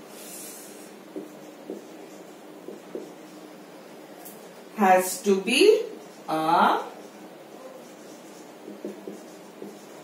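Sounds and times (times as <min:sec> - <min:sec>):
marker scratches: 0:00.2 - 0:03.6, 0:06.9 - 0:10.0
marker pen writing on whiteboard: 0:00.2 - 0:10.0.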